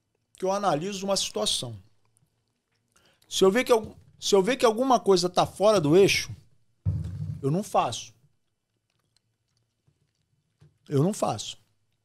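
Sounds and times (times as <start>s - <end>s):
man speaking: 7.4s - 8.1s.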